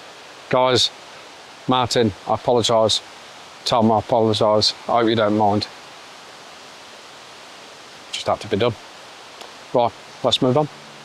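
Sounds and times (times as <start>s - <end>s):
woodland ambience rushing noise: 0.0s - 11.0s.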